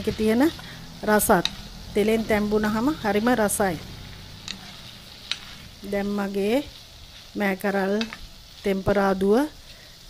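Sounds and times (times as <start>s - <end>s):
beans frying in oil: 0.0s - 10.0s
wooden spoon stirring: 4.4s - 9.2s.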